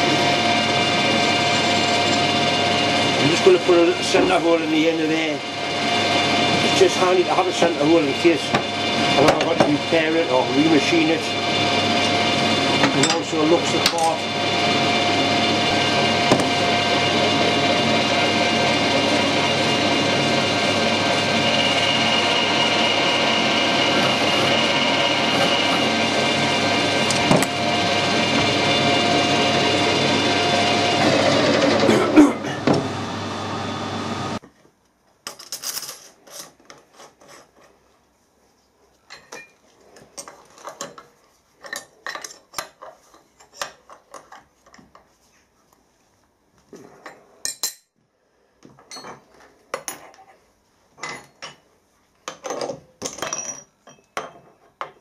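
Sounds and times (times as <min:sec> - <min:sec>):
metal lathe running: 0:00.0 - 0:34.4.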